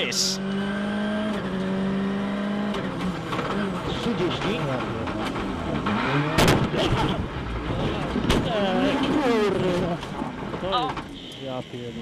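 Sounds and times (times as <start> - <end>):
rally car engine revving: 0.1 - 10.7
exhaust cracks: 2.7 - 11.1.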